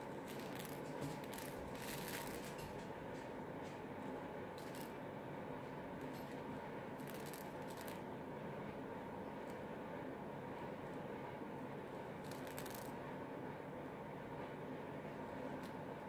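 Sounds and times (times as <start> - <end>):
steady room hum: 0.0 - 16.0.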